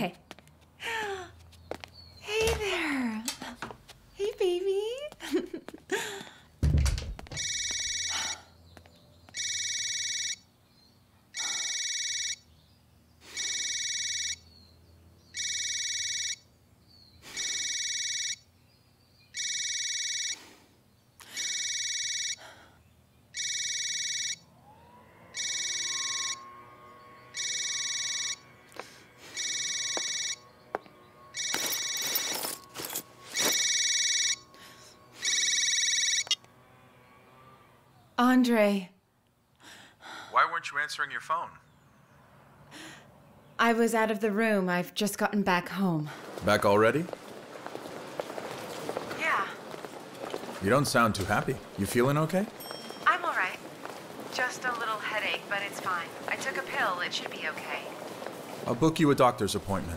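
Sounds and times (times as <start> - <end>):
phone ringtone: 7.4 - 8.3, 9.4 - 10.4, 11.4 - 12.4, 13.3 - 14.4, 15.4 - 16.4, 17.3 - 18.4, 19.4 - 20.4, 21.4 - 22.4, 23.4 - 24.4, 25.4 - 26.4, 27.3 - 28.5, 29.3 - 30.4, 31.3 - 34.6, 35.2 - 36.4, 52.5 - 53.7
faint clicks and rustles: 46.2 - 58.9.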